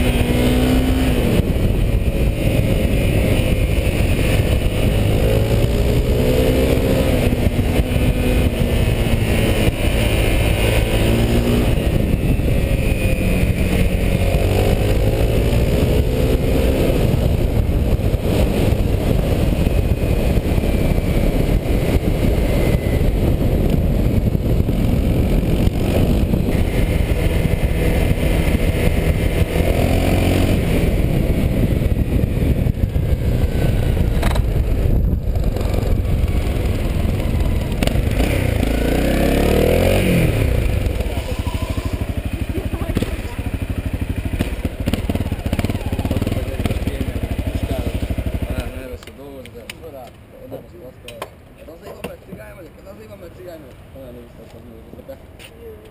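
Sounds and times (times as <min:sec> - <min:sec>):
motorcycle engine at speed: 0:00.0 - 0:50.2.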